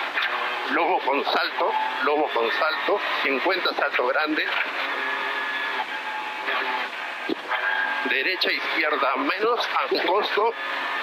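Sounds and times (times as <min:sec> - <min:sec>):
car engine revving through intercom: 0:00.3 - 0:11.0.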